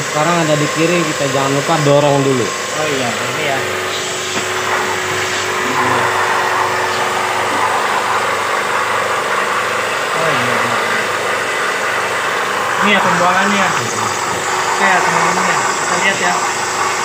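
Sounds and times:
pump humming: 0.0 - 17.0.

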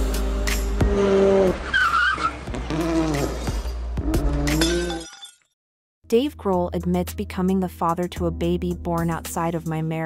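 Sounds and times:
glassy tinkling ringing: 4.6 - 5.5.

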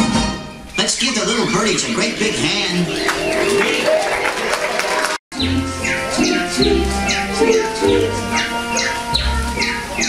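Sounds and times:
music with low bass: 5.4 - 10.0.

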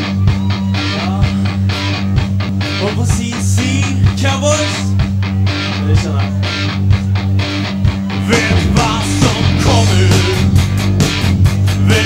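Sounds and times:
bass guitar: 0.0 - 12.0
electric guitars: 0.0 - 12.0
steady drum beat: 0.0 - 12.0.

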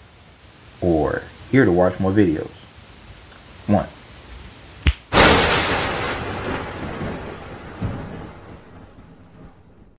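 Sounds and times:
rolling thunderclap: 5.1 - 9.9
sharp thunder crack: 5.1 - 9.9.

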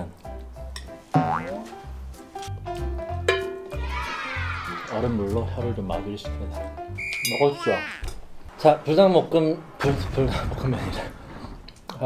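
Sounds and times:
cartoon boing sound effect: 1.2 - 1.6.

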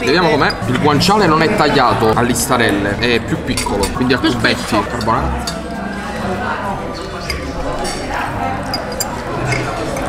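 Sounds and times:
indistinct conversation: 0.0 - 10.0
forks clinking against plates: 3.5 - 6.2, 7.0 - 10.0.

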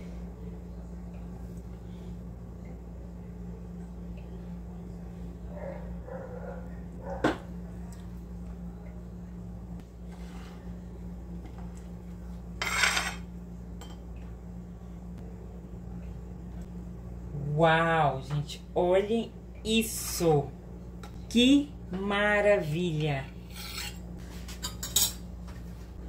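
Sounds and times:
low hum: 0.0 - 26.0
knife scraping on ceramic plate: 12.6 - 13.2, 23.4 - 24.0.

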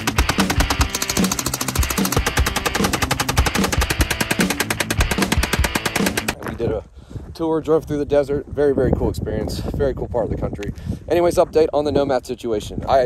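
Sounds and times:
automatic gunfire: 0.0 - 6.4
background music with steady beat: 0.0 - 6.4.

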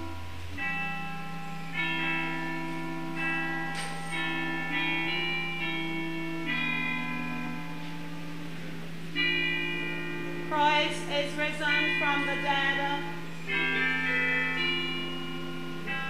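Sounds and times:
church organ chords: 0.0 - 16.0.

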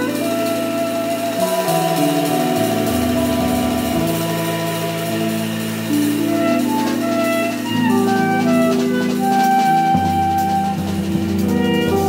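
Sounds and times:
low accompanying notes: 0.0 - 12.0
tenor saxophone long notes: 0.0 - 12.0.

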